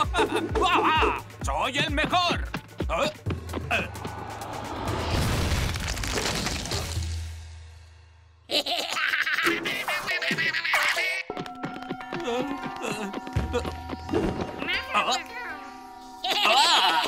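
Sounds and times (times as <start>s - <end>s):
music: 0.0s - 17.0s
cartoon bricks collapsing crash: 5.1s - 7.3s.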